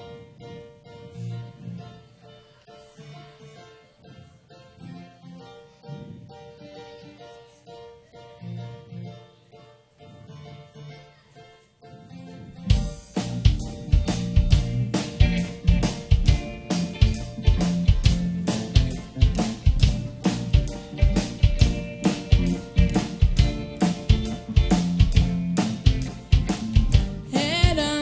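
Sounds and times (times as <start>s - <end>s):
electric keyboard chords: 0.0s - 28.0s
drum kit beat: 12.7s - 28.0s.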